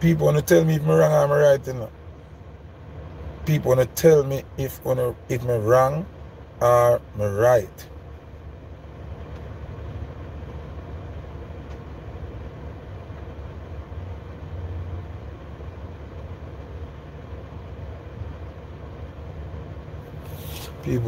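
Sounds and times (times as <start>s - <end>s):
low rumble in car cabin: 0.0s - 21.0s.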